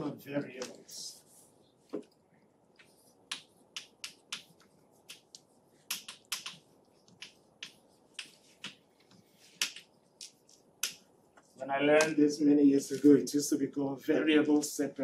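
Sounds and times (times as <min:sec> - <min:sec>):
chalk tapping and scratching on chalkboard: 0:02.8 - 0:12.2.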